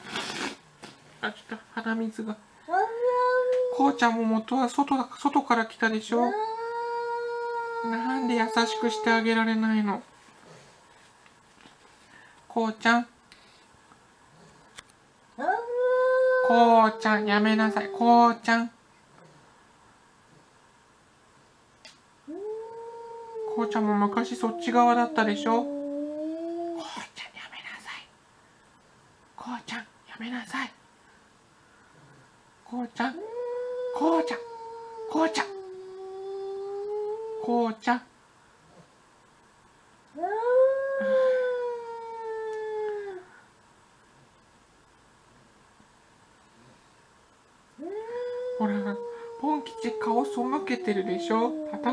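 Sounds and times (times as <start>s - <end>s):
cat yowling: 6.2s - 9.3s, 33.2s - 37.5s, 40.2s - 43.2s, 47.8s - 51.9s.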